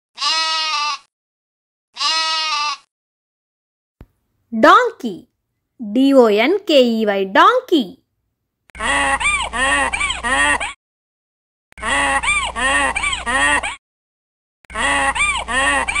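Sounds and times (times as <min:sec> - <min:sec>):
donkey braying: 0:02.0 - 0:02.9, 0:08.8 - 0:10.8, 0:11.8 - 0:13.8, 0:14.7 - 0:16.0.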